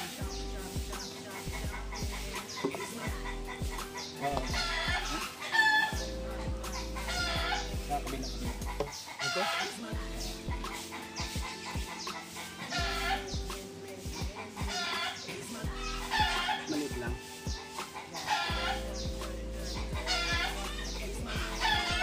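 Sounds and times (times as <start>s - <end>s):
background music: 0.0s - 22.0s
chickens clucking: 0.0s - 22.0s.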